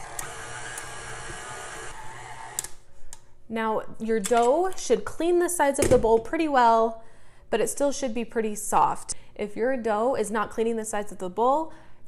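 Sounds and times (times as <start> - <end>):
stand mixer kneading dough: 0.0 - 2.6.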